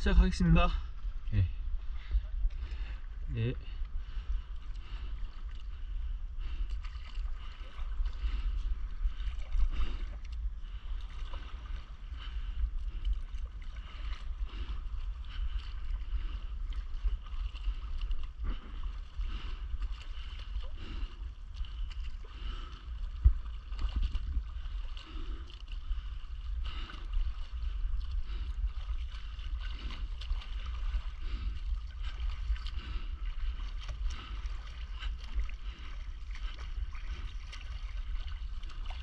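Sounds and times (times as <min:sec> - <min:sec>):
low wind rumble on microphone: 0:00.0 - 0:39.0
water lapping and splashing: 0:00.0 - 0:39.0.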